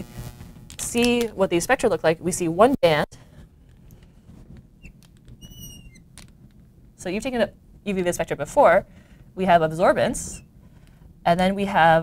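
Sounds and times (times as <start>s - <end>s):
marker squeaking: 4.8s - 6.3s.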